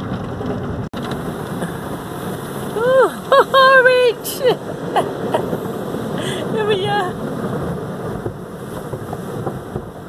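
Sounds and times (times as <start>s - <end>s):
car wash water rushing: 0.0s - 10.0s.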